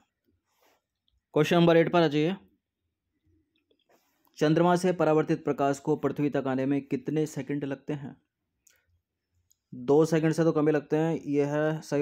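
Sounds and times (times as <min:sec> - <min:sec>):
man speaking: 0:01.3 - 0:02.5, 0:04.4 - 0:08.3, 0:09.7 - 0:12.0.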